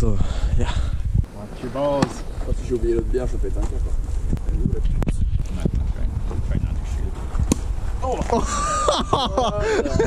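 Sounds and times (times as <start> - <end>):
wind rumble on microphone: 0.0 - 1.3, 2.2 - 10.0.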